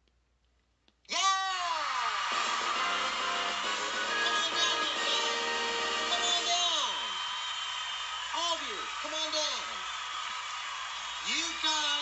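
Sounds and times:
cartoon voice shouting: 1.1s - 2.0s.

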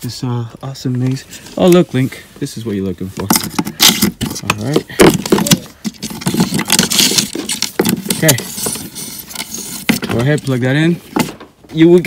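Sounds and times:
rustling insulation handling: 0.8s - 12.0s
person talking: 4.3s - 5.8s.

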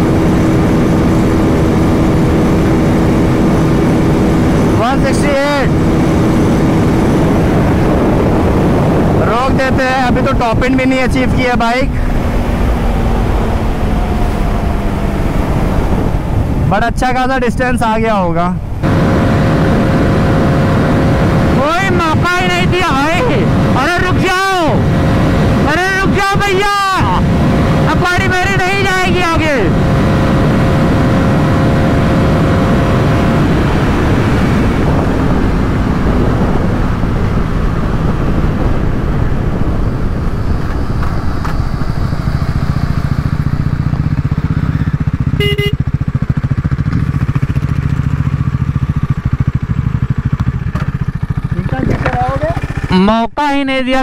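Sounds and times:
motorcycle engine revving: 0.0s - 18.0s, 18.6s - 53.2s
wind rush: 0.0s - 45.4s
short beep: 45.4s - 45.8s.

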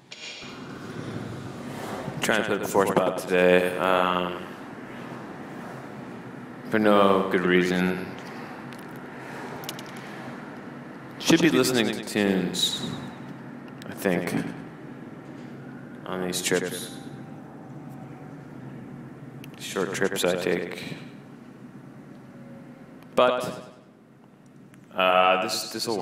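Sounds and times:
faint hum: 0.0s - 26.0s
low rumble and hiss: 0.0s - 26.0s.

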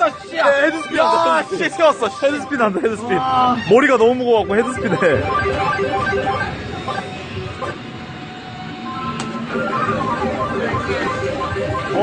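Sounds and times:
claw crane electronic jingle: 0.0s - 7.5s
arcade background noise: 0.0s - 12.0s.

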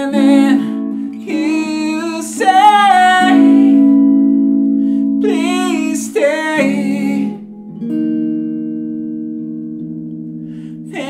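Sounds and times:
clean electric guitar chord ringing: 0.0s - 11.0s.

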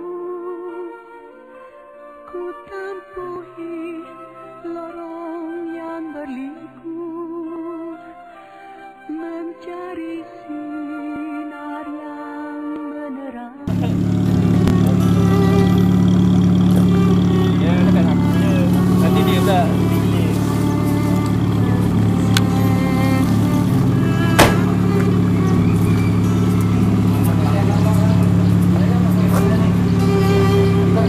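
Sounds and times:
car engine running: 13.7s - 31.0s
people talking: 13.7s - 31.0s
sharp knock: 24.4s - 24.8s.

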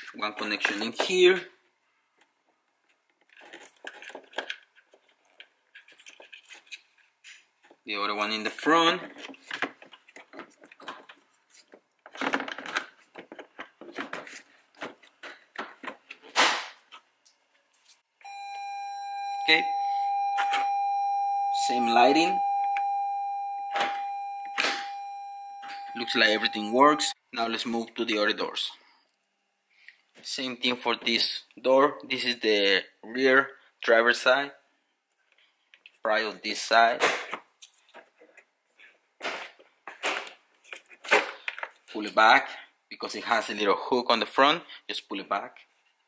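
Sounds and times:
plastic clicks and rattles: 9.0s - 17.0s
electronic chime tone: 18.2s - 27.2s.

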